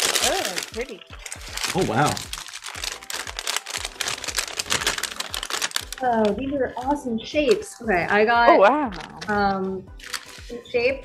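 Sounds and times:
plastic bags crinkling: 0.0s - 6.9s, 8.9s - 9.4s, 10.0s - 10.5s.

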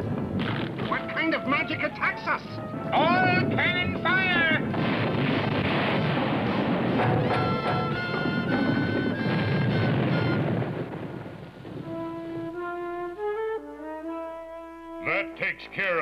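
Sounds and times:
cannon blast rumbling: 0.0s - 1.4s, 3.0s - 12.5s
orchestral music cue: 0.9s - 4.7s, 7.0s - 10.7s, 11.8s - 16.0s.

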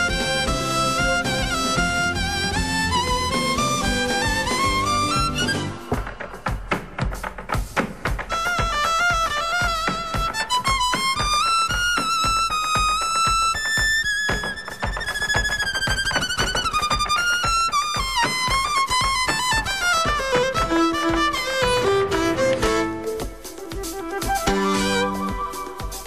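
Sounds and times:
violin playing a melody: 0.0s - 6.4s, 8.3s - 26.0s
fast percussive beat: 0.0s - 26.0s.

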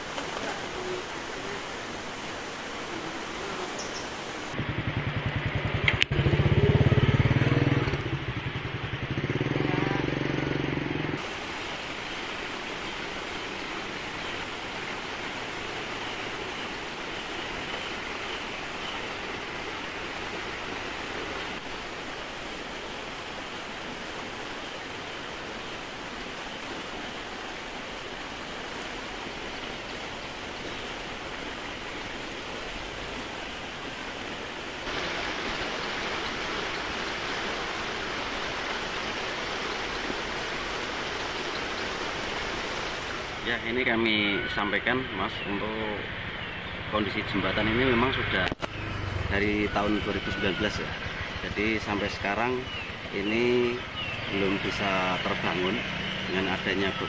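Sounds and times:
flowing river water: 0.0s - 57.0s
vehicle engine passing by: 4.6s - 11.2s, 46.0s - 52.0s, 54.2s - 56.4s.

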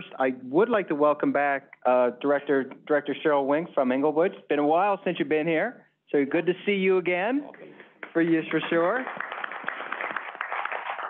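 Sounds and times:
people applauding: 7.5s - 11.0s.

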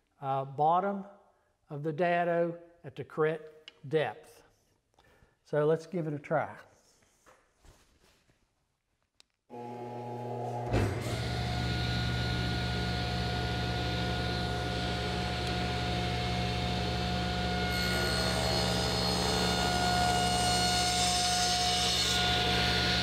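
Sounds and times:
saw cutting wood: 9.5s - 23.0s
table saw motor and blade whine: 9.5s - 23.0s.

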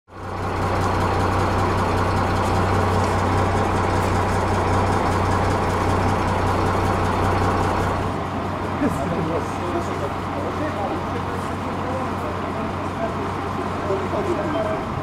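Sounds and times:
vehicle engine idling: 0.1s - 15.0s.

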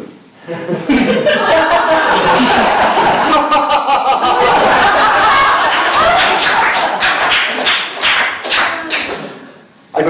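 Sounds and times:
audience laughing: 0.5s - 8.0s
audience clapping: 4.3s - 9.5s.

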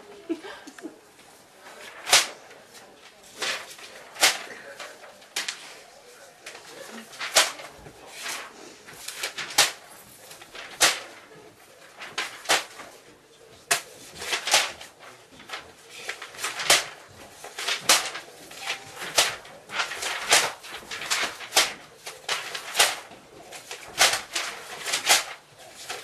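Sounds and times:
paper rustling: 1.1s - 26.0s.

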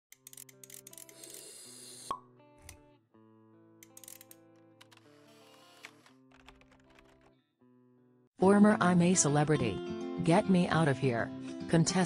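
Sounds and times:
background music with held notes: 8.4s - 12.0s.

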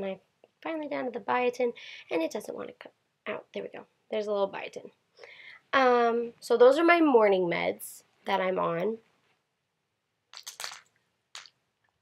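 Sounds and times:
plastic pill bottles rattling: 10.4s - 11.6s.

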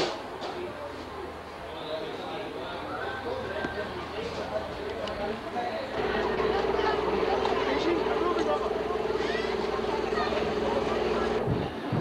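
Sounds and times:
people talking: 0.0s - 12.0s
motor drone: 6.0s - 11.6s.

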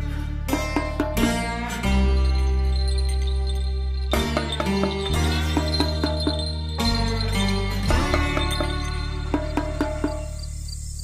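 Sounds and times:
high insect-like chirp: 2.2s - 11.0s.

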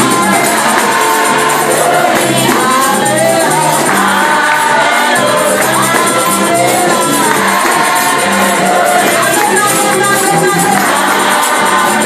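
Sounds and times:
gospel choir singing: 0.0s - 12.0s
tambourine beat: 0.0s - 12.0s.

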